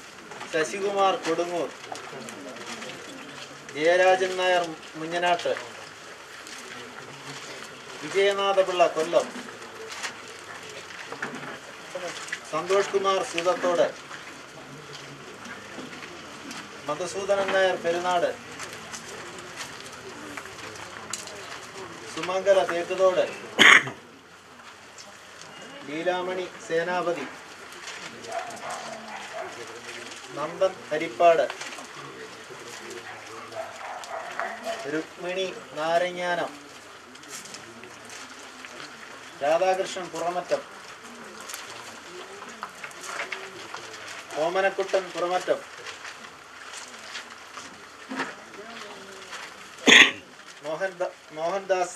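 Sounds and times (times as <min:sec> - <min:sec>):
outdoor gathering hush: 0:00.0 - 0:51.9
dove cooing: 0:40.6 - 0:44.3.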